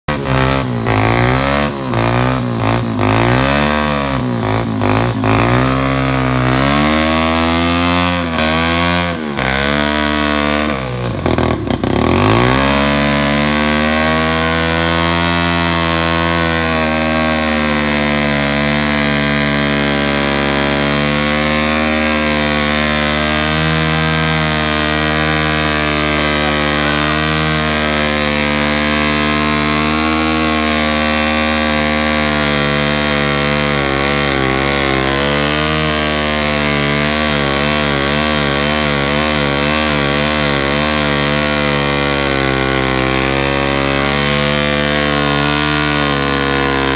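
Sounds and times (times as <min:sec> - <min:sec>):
small motorbike engine revving: 0:00.0 - 0:46.9
tyre spinning in burnout: 0:00.1 - 0:46.9.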